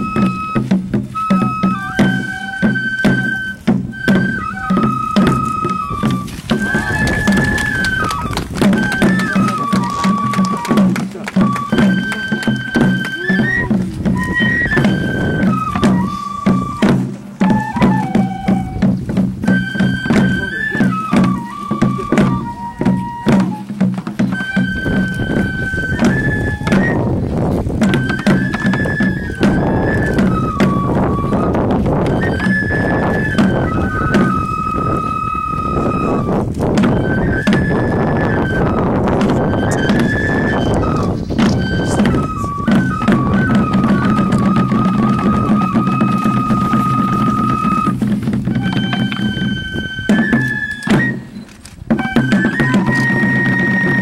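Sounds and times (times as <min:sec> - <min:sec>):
bamboo flute melody: 0:00.0 - 0:54.0.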